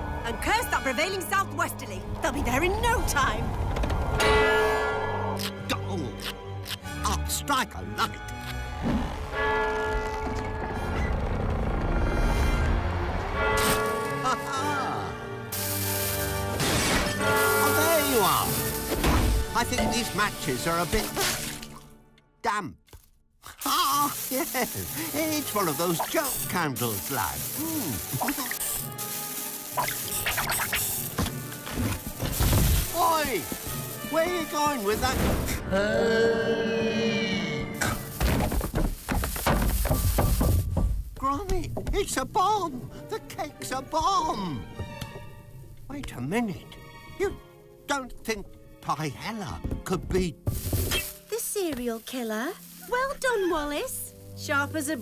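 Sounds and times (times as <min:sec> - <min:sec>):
film score music: 0:00.0 - 0:55.0
hissing fizz of sparks: 0:15.5 - 0:16.6, 0:23.5 - 0:35.6
match striking: 0:23.5 - 0:35.1
bodies tumbling onto wooden floor: 0:38.2 - 0:42.0.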